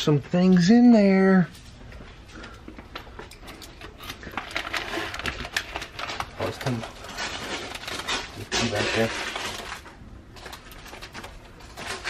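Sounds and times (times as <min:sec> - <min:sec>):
paper mail rustling: 0:03.8 - 0:12.0.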